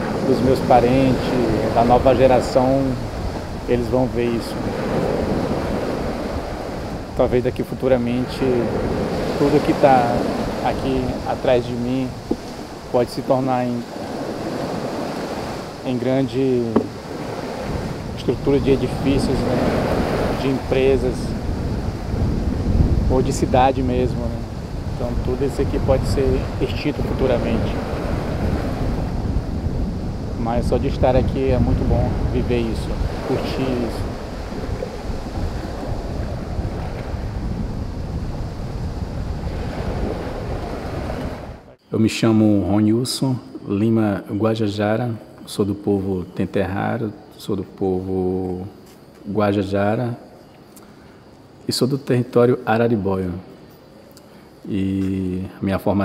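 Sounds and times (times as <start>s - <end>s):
surf washing onto sand: 0.0s - 41.7s
wind rumbling on microphone: 0.0s - 41.8s.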